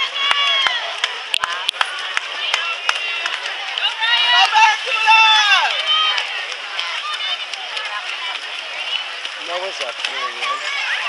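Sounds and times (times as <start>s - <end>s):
crowd noise: 0.0s - 11.0s
spectators shouting encouragement: 0.0s - 11.0s.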